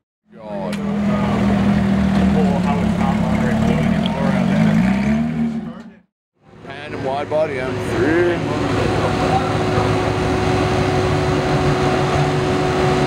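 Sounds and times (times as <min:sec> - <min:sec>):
people talking: 0:00.3 - 0:04.9, 0:05.5 - 0:06.0, 0:06.6 - 0:10.6
car engine at low revs: 0:00.6 - 0:06.0, 0:07.2 - 0:13.0.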